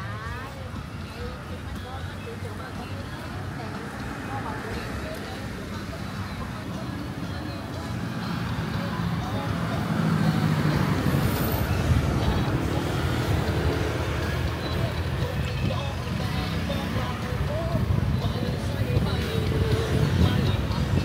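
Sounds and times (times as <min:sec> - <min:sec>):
people's voices: 0:00.0 - 0:21.0
road traffic passing close by: 0:00.0 - 0:21.0.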